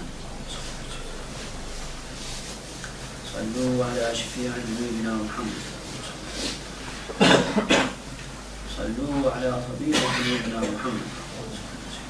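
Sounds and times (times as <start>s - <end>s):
man coughing: 7.1s - 8.0s, 9.9s - 10.7s.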